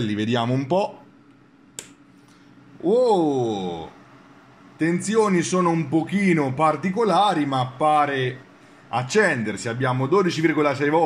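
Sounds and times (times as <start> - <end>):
rocker switch click: 1.8 - 2.0.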